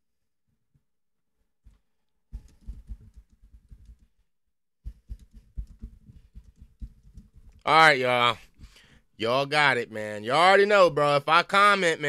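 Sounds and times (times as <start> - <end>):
keyboard typing: 4.9 - 7.6.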